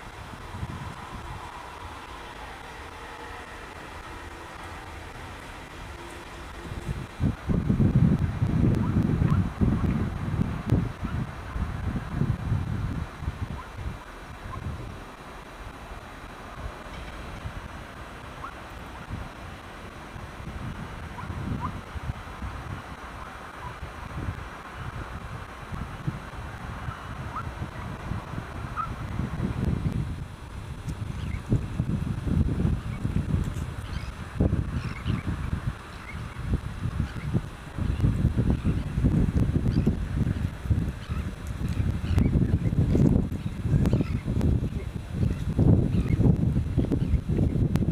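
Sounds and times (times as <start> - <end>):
wind buffeting microphone: 0.0 - 47.9
faint distant bird calls: 33.8 - 37.3, 39.7 - 42.7.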